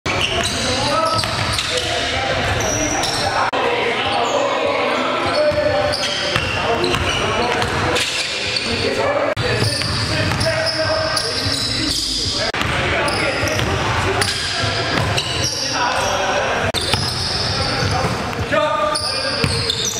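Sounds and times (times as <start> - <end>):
voices echoing in a hall: 0.1 - 19.9.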